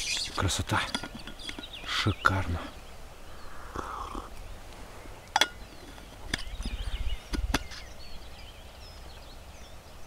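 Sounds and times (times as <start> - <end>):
small birds chirping faintly: 0.0 - 10.0
thermos cap clicking and knocking: 0.8 - 1.7, 7.3 - 7.8.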